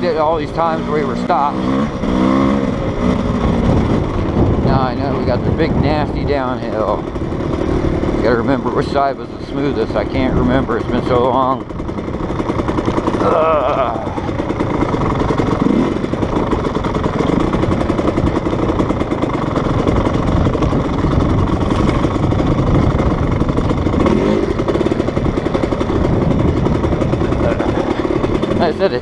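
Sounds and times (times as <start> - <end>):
dirt bike engine revving: 0.0 - 29.0
wind noise on microphone: 3.0 - 8.3, 19.6 - 27.6.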